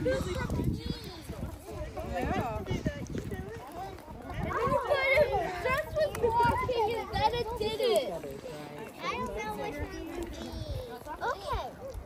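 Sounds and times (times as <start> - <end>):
young children talking: 0.0 - 12.0.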